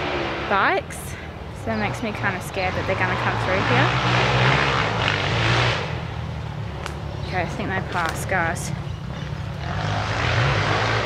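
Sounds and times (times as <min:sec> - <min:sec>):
motorbike engines passing: 0:00.0 - 0:11.0.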